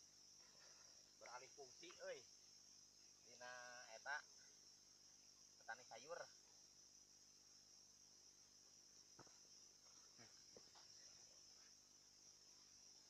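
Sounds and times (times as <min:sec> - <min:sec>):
high-pitched insect chorus: 0:00.0 - 0:13.0.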